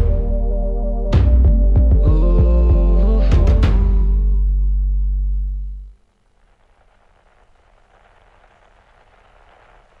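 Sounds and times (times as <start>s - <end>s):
faint static hiss: 2.2s - 10.0s.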